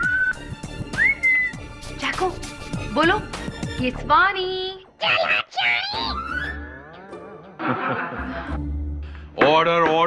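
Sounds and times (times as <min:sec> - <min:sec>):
soft background music: 0:00.0 - 0:04.9.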